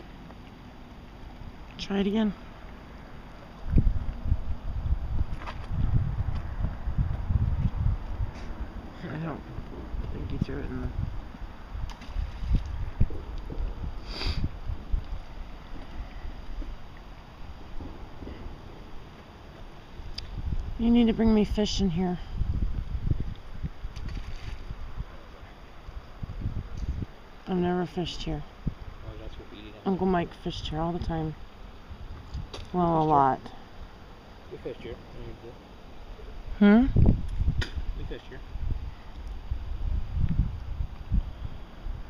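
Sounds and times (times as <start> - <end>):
river flowing: 0.0 - 5.2, 8.0 - 22.4, 23.0 - 26.4, 27.1 - 36.6
wind buffeting microphone: 1.4 - 34.0, 34.6 - 42.0.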